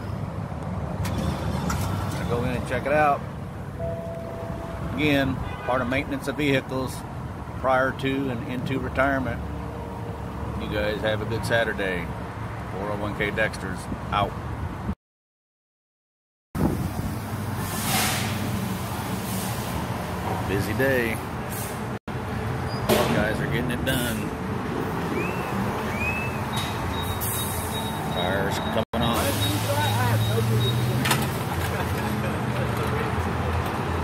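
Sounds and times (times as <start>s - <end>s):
compressed air hiss: 17.6s - 18.6s.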